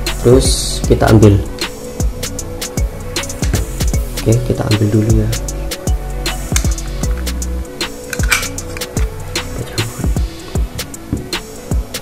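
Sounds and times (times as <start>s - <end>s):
music with drum beat and bass: 0.0s - 12.0s.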